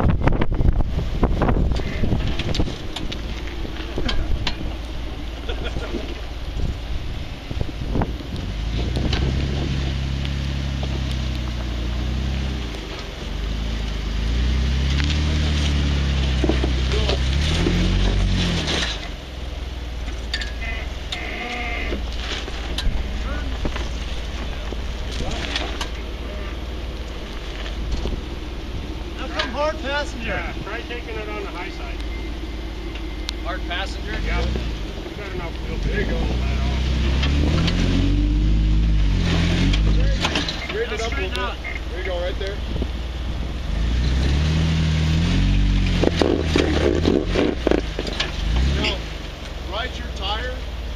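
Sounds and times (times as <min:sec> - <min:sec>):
car engine revving: 0:00.0 - 0:50.9.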